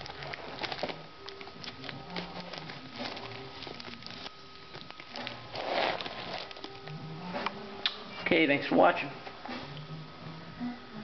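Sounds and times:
handbag rustle: 0.0s - 6.8s
handbag clicks and crinkles: 0.0s - 6.9s.

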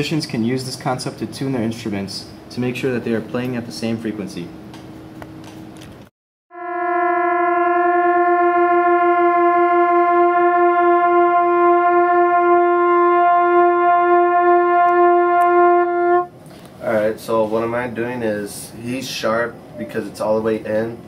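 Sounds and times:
two trumpets beating tones: 6.5s - 16.4s.

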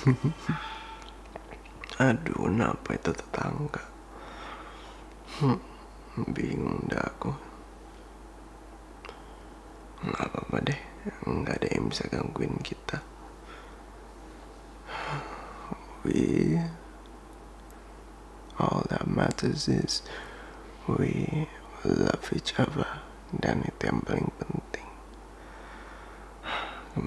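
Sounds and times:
low steady hiss: 0.0s - 27.0s
man breathing: 0.4s - 1.2s, 4.1s - 5.8s, 13.4s - 13.9s, 14.8s - 15.8s, 20.0s - 20.8s, 25.4s - 26.9s
man inhaling: 4.1s - 5.4s, 20.0s - 20.7s, 25.4s - 26.9s.

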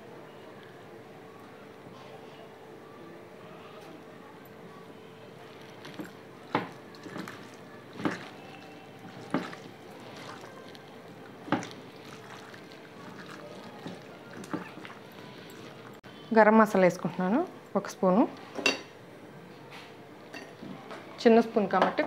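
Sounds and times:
hand kneading chicken in marinade: 5.5s - 16.0s.

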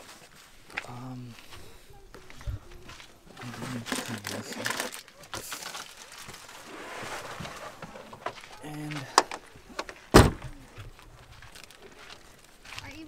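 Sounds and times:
bags crinkling and rustling: 2.8s - 8.9s, 10.9s - 13.0s.

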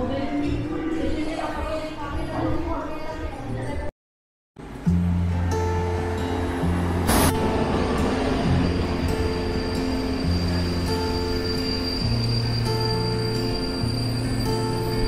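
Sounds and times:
music with slow held chords: 4.7s - 15.0s
passenger train rolling past: 4.7s - 15.0s
short sharp burst of noise: 7.0s - 12.1s.

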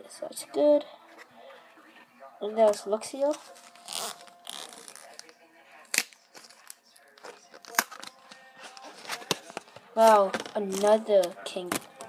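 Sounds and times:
trading cards being handled: 2.6s - 12.0s.

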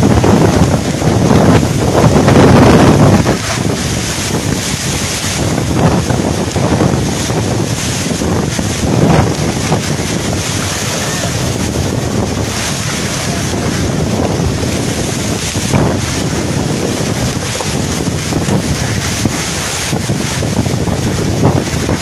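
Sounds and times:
strong wind buffeting microphone: 0.0s - 22.0s.

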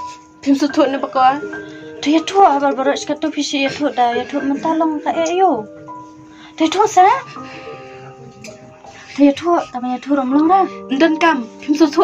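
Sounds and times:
soft background music: 0.0s - 12.0s
young woman crying and sobbing: 2.0s - 5.8s, 9.0s - 12.0s.

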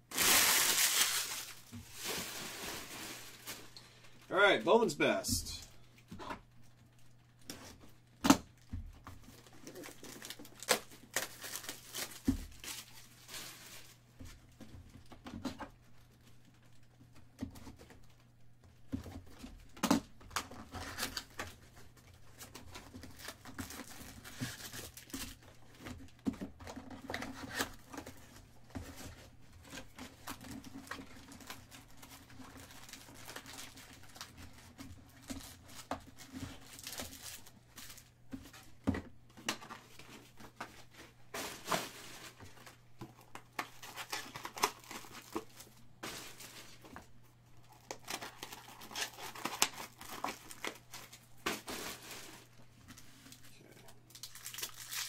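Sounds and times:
foil packs crinkling and rustling: 0.0s - 4.3s, 6.0s - 14.6s, 19.1s - 55.0s.

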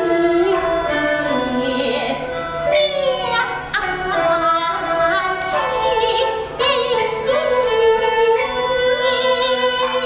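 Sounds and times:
instrumental accompaniment: 0.0s - 10.0s
woman singing opera: 0.0s - 10.0s.

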